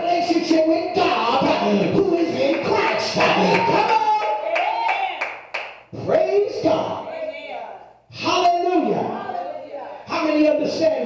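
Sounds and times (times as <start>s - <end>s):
hand clapping: 1.5s - 5.8s.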